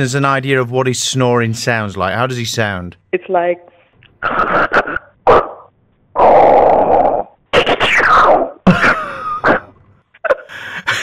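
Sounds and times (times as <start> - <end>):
laugh: 8.6 - 11.0.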